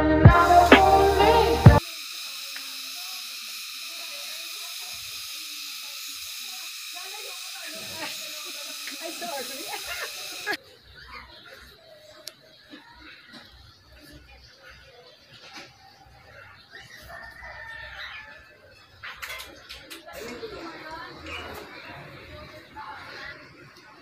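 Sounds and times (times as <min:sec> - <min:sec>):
faint voices: 0:00.0 - 0:24.0
high hiss: 0:00.2 - 0:10.6.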